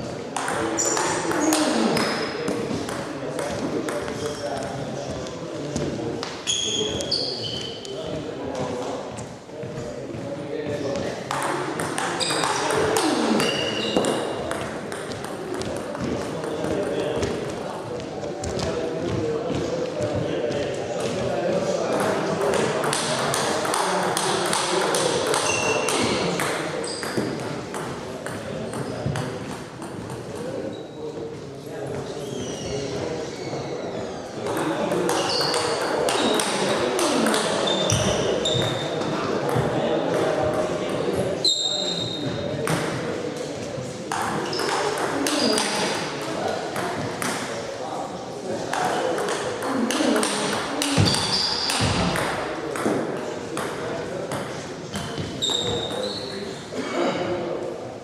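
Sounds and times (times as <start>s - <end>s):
murmur of voices: 0.0s - 58.0s
table tennis ball pinging: 0.4s - 4.4s, 11.3s - 17.3s, 21.9s - 30.4s, 34.4s - 38.8s, 44.1s - 46.0s, 48.7s - 53.0s.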